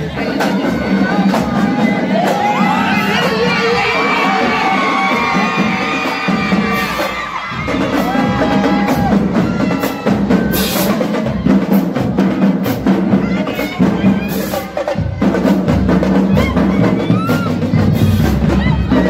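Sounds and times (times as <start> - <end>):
large crowd cheering and shouting: 0.0 - 19.0
marching snare and bass drums: 0.0 - 19.0.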